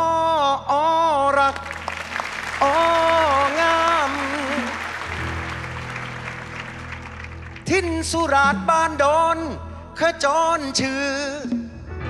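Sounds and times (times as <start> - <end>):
audience applause: 1.5 - 8.0
band playing: 1.7 - 9.4
man singing long notes: 2.6 - 5.4, 7.6 - 12.0.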